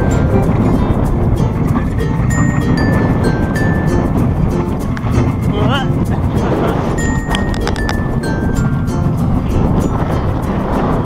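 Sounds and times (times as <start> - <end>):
roller coaster running on track: 0.0 - 11.0
wind rushing over microphone: 0.0 - 11.0.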